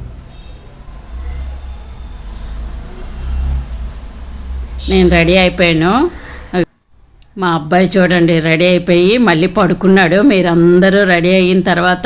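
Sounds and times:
low steady rumble: 0:00.0 - 0:08.5.

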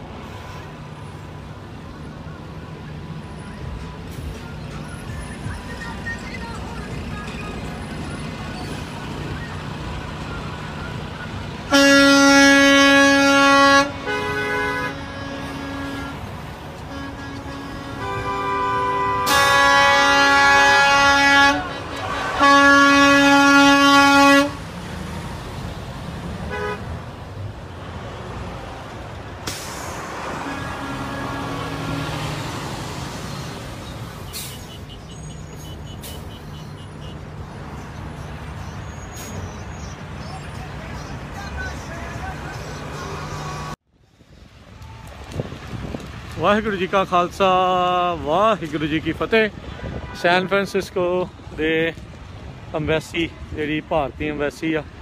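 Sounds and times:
truck horns honking: 0:00.0 - 0:01.4, 0:02.0 - 0:25.3, 0:26.3 - 0:27.4, 0:29.3 - 0:43.8, 0:48.2 - 0:51.3
road and engine noise: 0:00.0 - 0:55.0.

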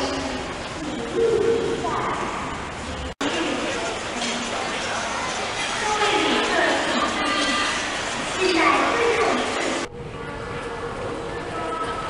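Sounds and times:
airport terminal voices: 0:00.0 - 0:12.0.

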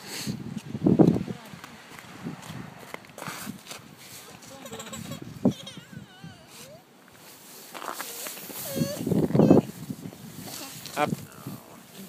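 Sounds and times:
toddler babbling and whining: 0:04.5 - 0:06.9, 0:08.1 - 0:09.8.

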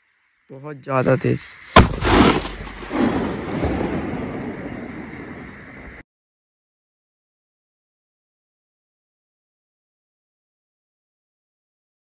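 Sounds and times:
firecracker blast echoing: 0:01.7 - 0:06.0.

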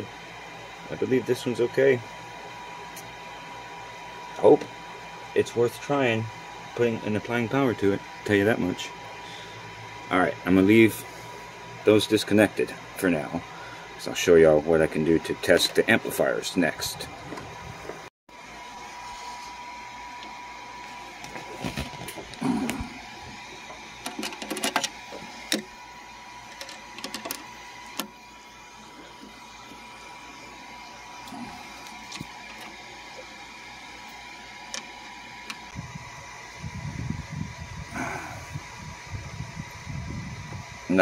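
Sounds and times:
test leads clicking and rustling: 0:24.0 - 0:25.6.

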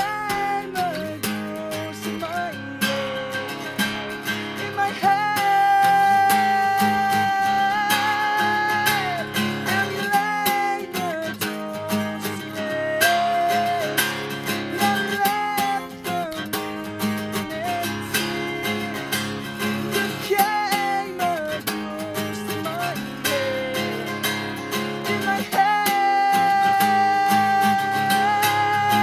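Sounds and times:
acoustic guitar strumming: 0:00.0 - 0:29.0
man singing: 0:00.0 - 0:29.0.

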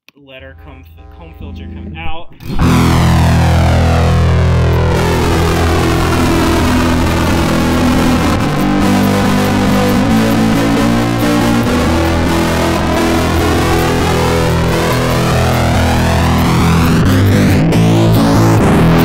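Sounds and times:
distorted electric guitar: 0:00.2 - 0:19.0.

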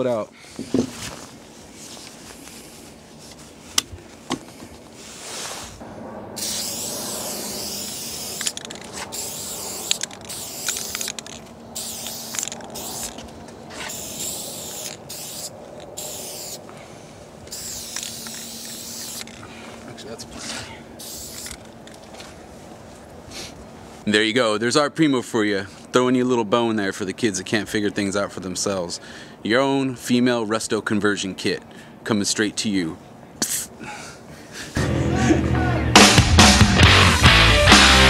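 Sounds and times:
spray can hissing bursts: 0:06.4 - 0:13.2, 0:13.8 - 0:16.6, 0:17.5 - 0:19.3, 0:21.0 - 0:21.6
spray can clicks: 0:08.3 - 0:13.1.

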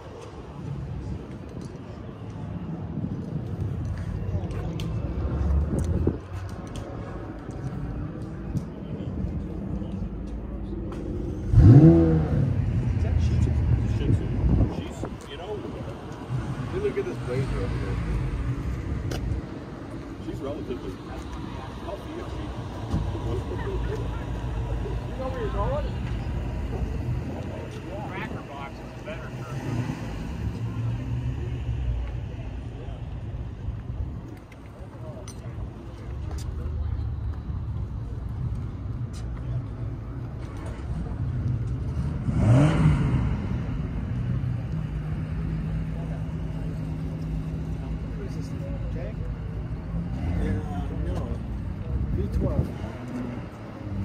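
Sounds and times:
crowd chatter: 0:00.0 - 0:54.0
low engine rumble: 0:00.0 - 0:54.0
engine revving: 0:11.3 - 0:14.8, 0:41.7 - 0:46.4.

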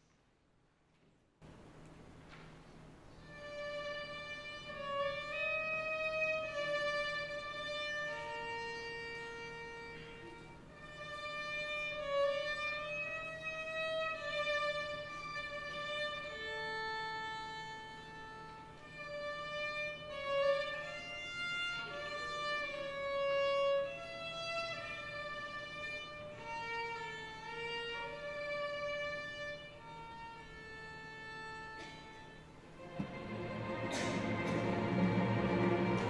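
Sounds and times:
orchestra playing slow piece: 0:03.2 - 0:36.0.

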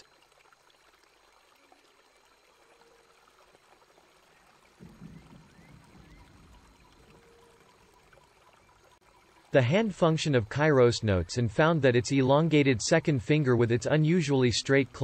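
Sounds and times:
faint low noise: 0:01.4 - 0:15.0.

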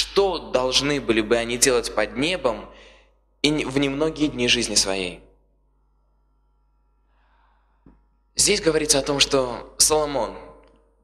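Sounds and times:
breath into microphone: 0:02.7 - 0:03.3, 0:07.0 - 0:08.0.

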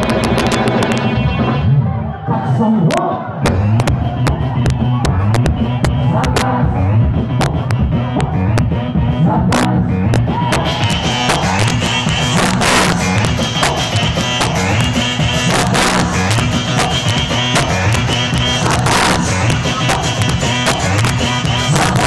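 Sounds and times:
live band playing dance music: 0:00.0 - 0:22.0.

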